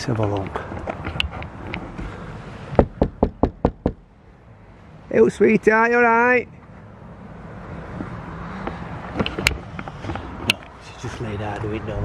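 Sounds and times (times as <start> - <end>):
knocks on a window: 2.8 - 4.0.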